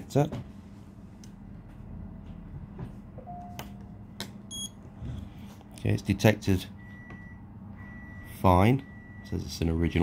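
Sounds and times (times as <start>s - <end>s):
steady low hum: 0.0s - 10.0s
high electronic beep: 4.5s - 4.8s.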